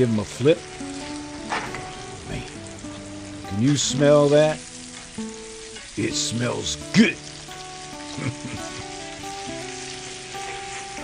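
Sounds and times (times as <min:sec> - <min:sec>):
fish frying in hot oil: 0:00.0 - 0:11.0.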